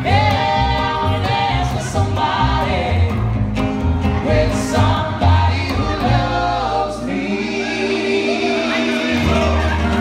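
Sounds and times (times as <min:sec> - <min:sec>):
acoustic guitar: 0:00.0 - 0:10.0
bass guitar: 0:00.0 - 0:10.0.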